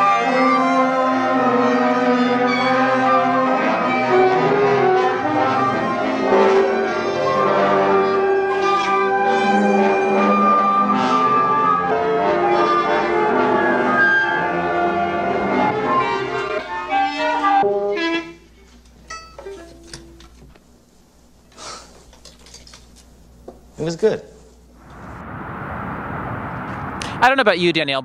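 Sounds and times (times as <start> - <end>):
small orchestra playing: 0.0 - 18.3.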